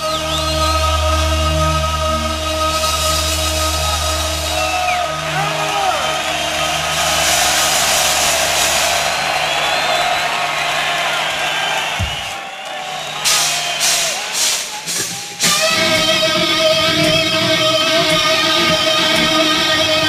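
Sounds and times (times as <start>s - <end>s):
crowd cheering and whistling: 0.0s - 20.0s
electric guitar strums: 14.8s - 20.0s.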